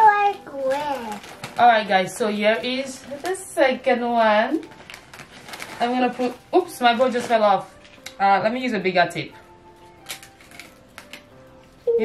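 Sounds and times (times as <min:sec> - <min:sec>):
wrapping paper crackling: 0:00.0 - 0:08.2, 0:09.8 - 0:11.8
faint background music: 0:00.0 - 0:12.0.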